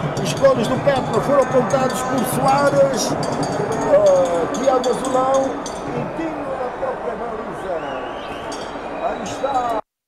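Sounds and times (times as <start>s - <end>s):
faint stadium crowd background: 0.0s - 9.9s
men talking: 0.0s - 9.9s.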